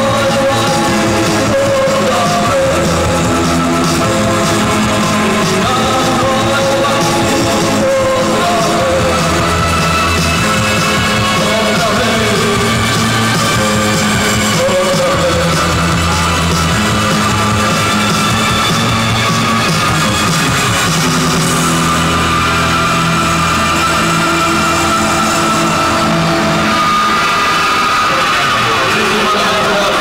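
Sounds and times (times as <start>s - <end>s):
live post-punk band playing: 0.0s - 30.0s.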